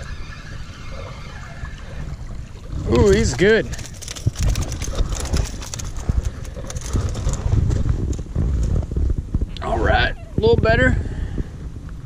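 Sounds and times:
fish flopping on sand: 3.2s - 8.2s.

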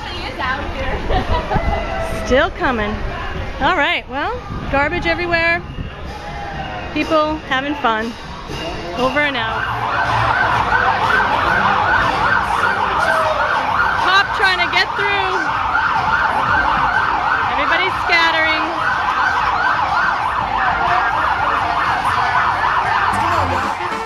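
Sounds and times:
siren wailing in fast yelp: 9.5s - 24.0s
people shouting: 20.5s - 24.0s.

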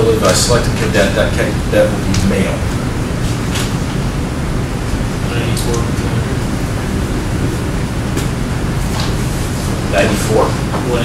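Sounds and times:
room rumble and hiss: 0.0s - 11.0s.

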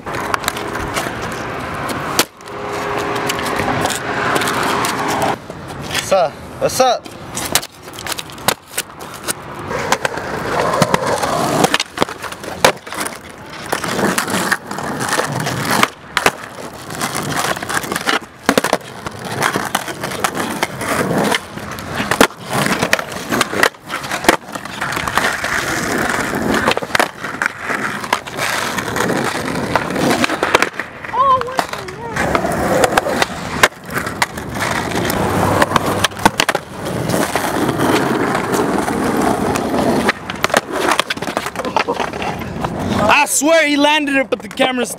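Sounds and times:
skateboard clacking: 0.0s - 44.9s
skateboard wheels rolling on asphalt: 0.0s - 44.9s.

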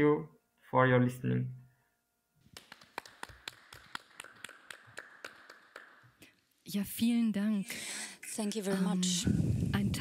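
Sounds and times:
people clapping: 2.4s - 6.4s.

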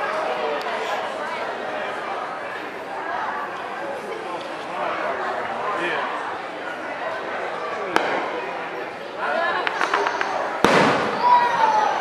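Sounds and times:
crowd talking: 0.0s - 12.0s
firework bang: 8.0s - 8.4s, 9.6s - 11.7s
fireworks crackling: 9.6s - 11.6s.

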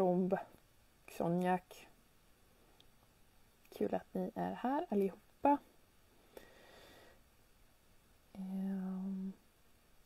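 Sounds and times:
woman humming: 8.3s - 9.4s.

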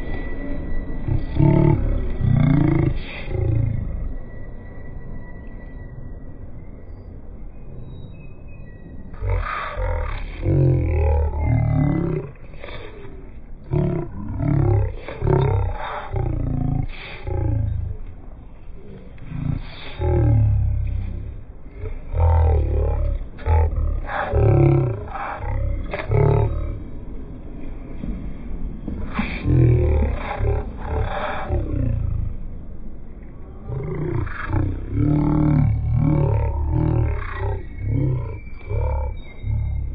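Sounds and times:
man's deep voice gliding in pitch: 1.0s - 4.3s, 9.1s - 27.1s, 29.0s - 32.4s, 33.4s - 39.9s.

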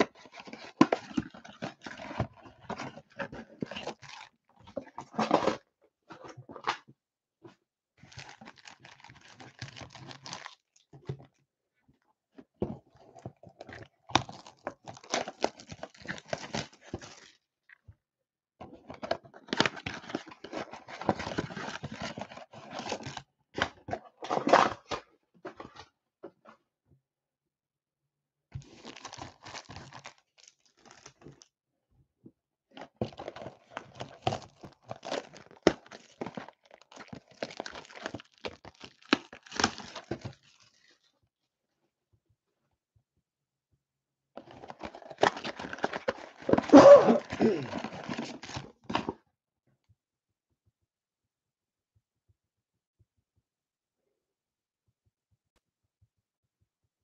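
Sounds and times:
foil packs crinkling and tearing: 8.1s - 10.7s, 28.7s - 31.3s, 33.1s - 40.9s, 44.7s - 49.1s
cellophane wrap crinkling: 8.1s - 10.8s, 28.7s - 31.4s, 33.1s - 40.9s.

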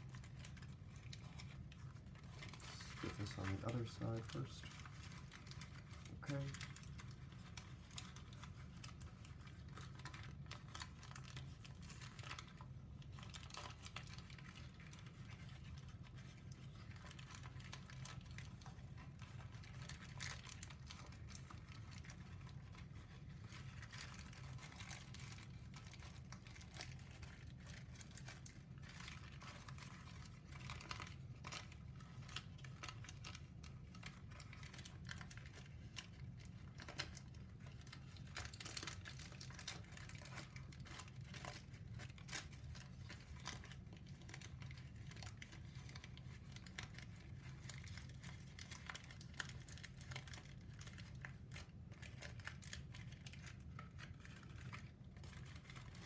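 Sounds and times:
paper crinkling and crackling: 0.0s - 56.0s.

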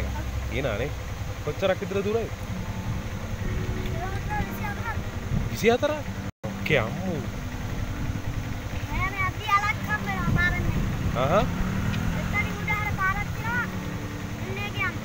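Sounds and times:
people talking: 0.0s - 2.3s, 3.8s - 6.0s, 6.6s - 7.3s, 8.8s - 11.5s, 12.1s - 13.7s, 14.4s - 15.0s
steady low rumble: 0.0s - 15.0s.

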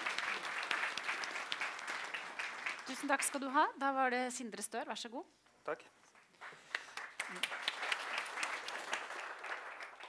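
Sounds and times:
audience applauding: 0.0s - 3.4s, 6.4s - 10.0s.

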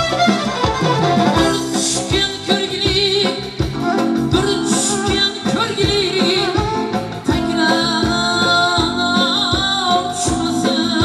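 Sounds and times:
drums with a steady beat: 0.0s - 11.0s
electronic keyboard: 0.0s - 11.0s
man singing through a microphone: 1.4s - 11.0s.

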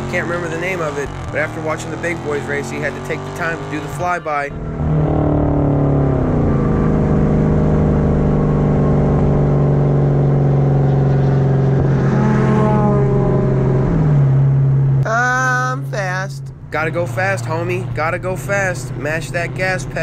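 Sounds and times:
car engine and exhaust running: 0.0s - 20.0s.

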